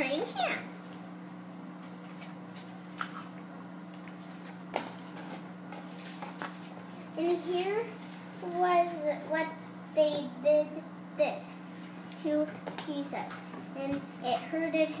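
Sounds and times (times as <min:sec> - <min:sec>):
girl's voice: 0:00.0 - 0:00.8, 0:07.2 - 0:15.0
low room hum: 0:00.0 - 0:15.0.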